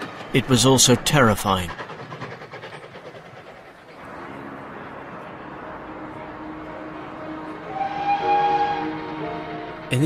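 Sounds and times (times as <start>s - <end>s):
music of long held notes: 4.0s - 10.0s.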